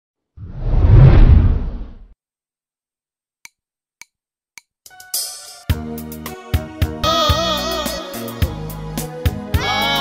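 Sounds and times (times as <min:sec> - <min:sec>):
deep rumble: 0:00.4 - 0:02.0
whoosh of rushing noise: 0:00.4 - 0:02.0.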